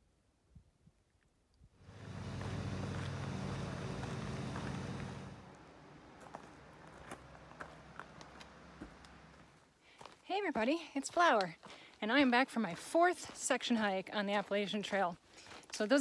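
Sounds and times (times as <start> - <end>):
outdoor ambience: 0.0 - 16.0
low engine-like hum: 1.8 - 9.6
footsteps clicking: 6.2 - 10.2.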